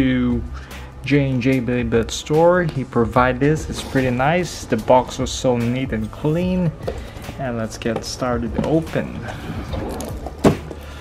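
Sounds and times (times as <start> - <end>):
box thunk on table: 10.4 - 10.8.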